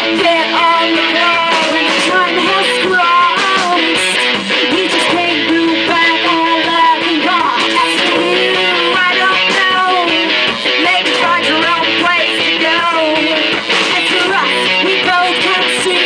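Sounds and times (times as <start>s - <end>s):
indie rock band playing: 0.0s - 16.0s
strummed electric guitar: 0.0s - 16.0s
woman singing into a microphone: 0.0s - 16.0s.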